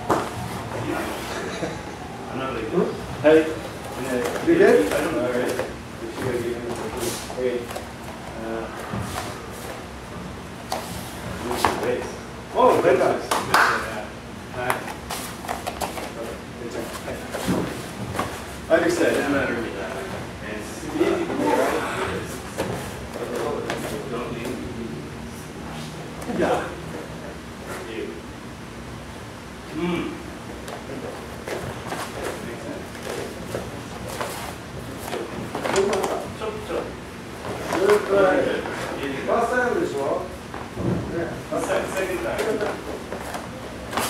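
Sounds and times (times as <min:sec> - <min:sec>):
low voices talking: 0:18.8 - 0:25.4.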